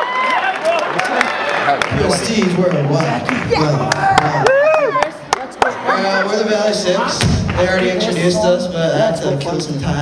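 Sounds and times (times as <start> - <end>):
man talking into microphone: 1.8 - 4.5, 5.9 - 10.0.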